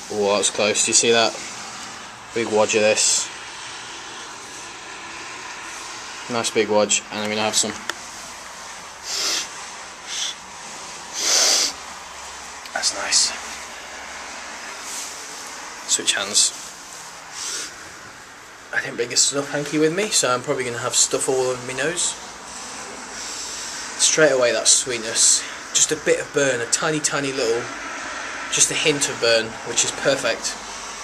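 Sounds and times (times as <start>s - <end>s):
person sniffing sharply: 9.0s - 10.4s, 11.1s - 11.8s, 17.3s - 17.8s.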